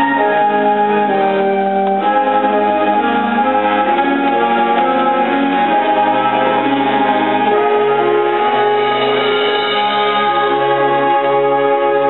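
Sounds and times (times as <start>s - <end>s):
concert band playing held chords: 0.0s - 12.0s.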